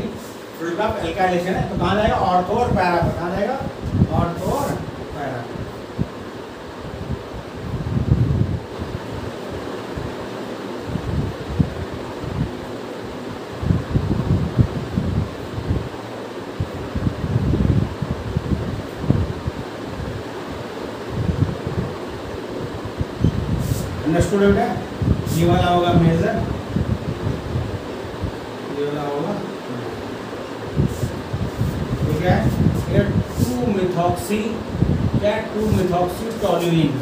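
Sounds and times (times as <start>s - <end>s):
wind gusts buffeting microphone: 0.0s - 10.2s, 10.8s - 28.5s, 30.6s - 37.0s
steady rushing air noise: 0.0s - 37.0s.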